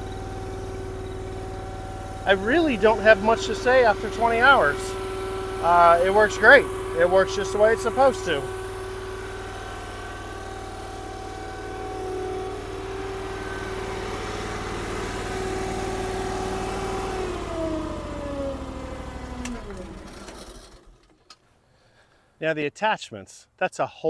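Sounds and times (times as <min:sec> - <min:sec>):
skid steer engine running: 0:00.0 - 0:21.4.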